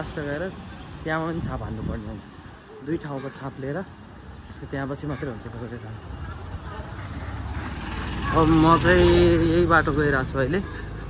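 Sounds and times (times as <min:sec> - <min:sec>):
traffic engine rumble: 0:00.0 - 0:11.0.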